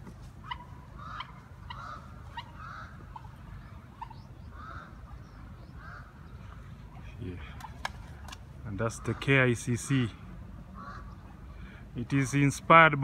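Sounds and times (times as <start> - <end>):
birds calling: 0.0 - 13.0
low hum of city traffic: 0.0 - 13.0.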